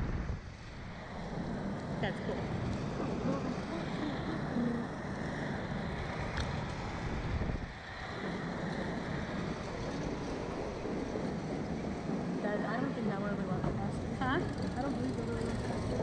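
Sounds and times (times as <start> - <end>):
wind rushing over microphone: 0.0 - 16.0.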